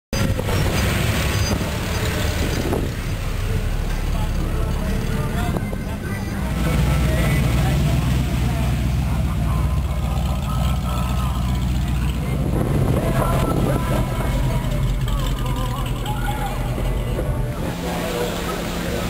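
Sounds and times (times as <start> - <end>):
hot rod engines rumbling: 0.1 - 19.0.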